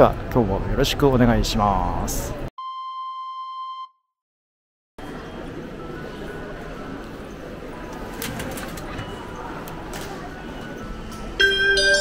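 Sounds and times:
station concourse noise: 5.0s - 12.0s
ticket gate clicks: 7.8s - 11.6s
bell-like chime melody: 11.4s - 12.0s.

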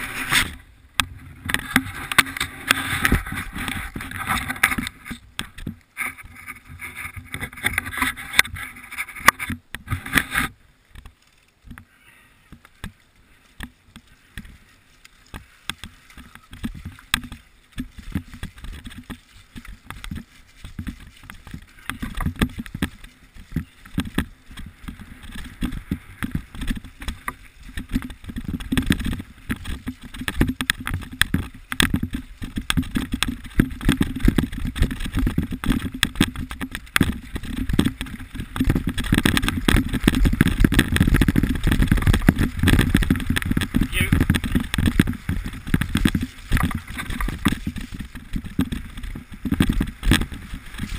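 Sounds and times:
bike rattling over bumps: 0.0s - 50.9s
tyres running through mud: 0.0s - 50.9s
wind rumbling on microphone: 0.0s - 50.9s.

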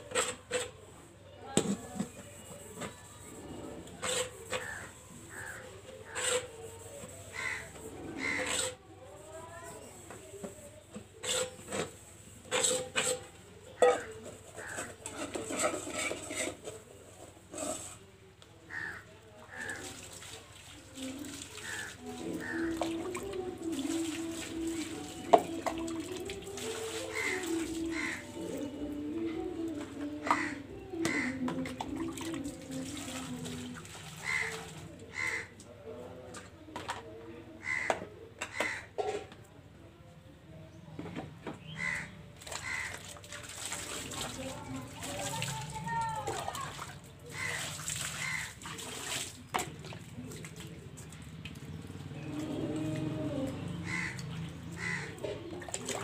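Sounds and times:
crows cawing: 4.6s - 6.2s, 7.3s - 8.6s, 18.7s - 19.9s, 21.6s - 22.8s, 27.1s - 28.2s, 30.3s - 31.4s, 34.2s - 35.5s, 37.6s - 38.9s, 41.8s - 43.0s, 47.3s - 48.5s, 53.8s - 55.2s
water splashing and pouring: 19.6s - 28.6s, 31.1s - 35.0s, 42.4s - 56.0s.

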